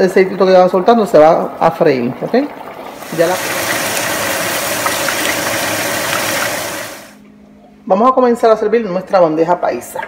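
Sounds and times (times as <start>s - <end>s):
meat boiling in a pot: 0.0s - 7.2s
fat frying crackles: 1.6s - 7.2s.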